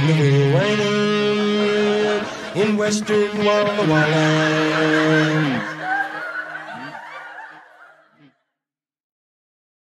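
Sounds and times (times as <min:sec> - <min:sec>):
man snickering laugh: 0:05.7 - 0:07.6.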